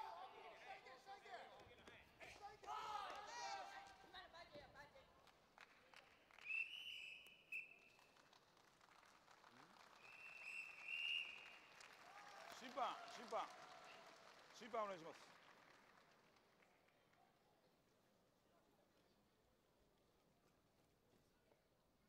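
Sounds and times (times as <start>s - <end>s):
shrill whistle blasts: 6.4s - 7.9s, 10.0s - 11.6s.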